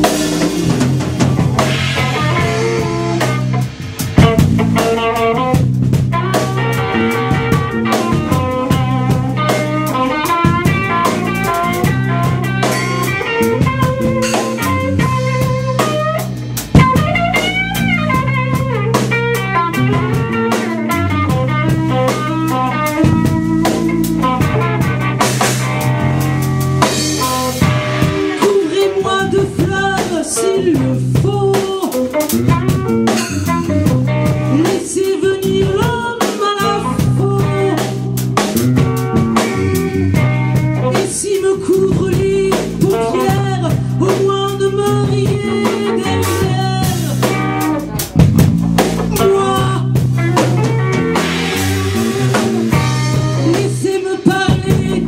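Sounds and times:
drum kit: 0.0 - 55.0
electric guitars: 0.0 - 55.0.

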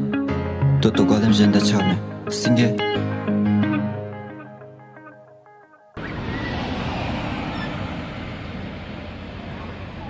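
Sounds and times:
road traffic: 6.0 - 10.0.

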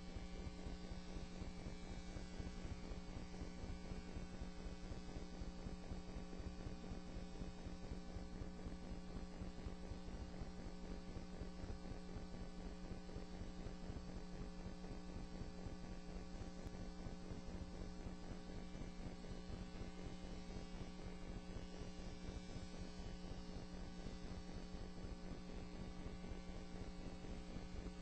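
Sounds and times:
electrical mains hum: 0.0 - 28.0.

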